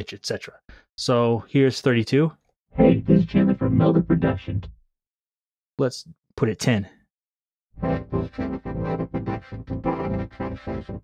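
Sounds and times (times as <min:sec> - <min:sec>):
vocoded synthesizer chords: 0:02.8 - 0:04.6, 0:07.8 - 0:11.0.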